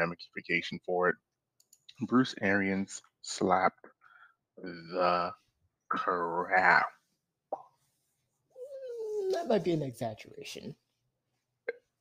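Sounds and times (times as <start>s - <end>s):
man speaking: 0.0s - 1.2s, 1.9s - 3.9s, 4.6s - 7.1s, 9.2s - 10.8s.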